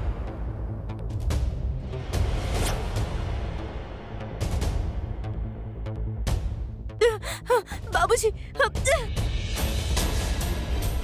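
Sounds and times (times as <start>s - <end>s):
tense music with low drone: 0.0s - 11.0s
woman's pained gasping cries: 7.0s - 9.2s.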